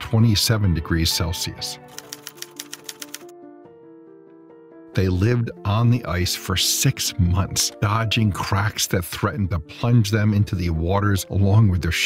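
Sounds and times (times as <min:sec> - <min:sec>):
soft background music: 0:00.0 - 0:12.0
typewriter keystroke clicks: 0:01.9 - 0:03.3.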